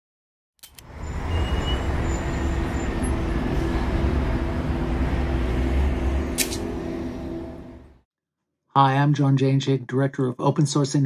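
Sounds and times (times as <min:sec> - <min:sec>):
sharp click: 0:06.4 - 0:06.6.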